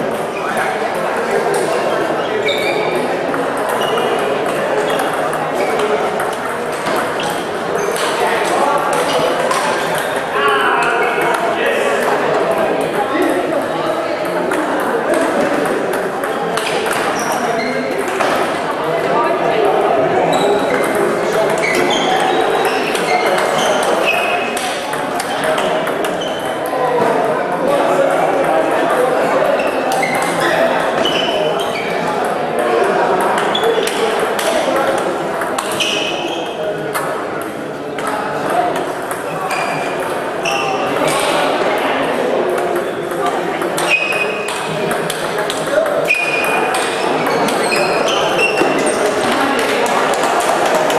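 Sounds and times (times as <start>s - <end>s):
babble of voices in a hall: 0.0s - 50.9s
people talking: 0.0s - 50.9s
table tennis balls clicking: 3.0s - 10.2s, 42.5s - 50.9s.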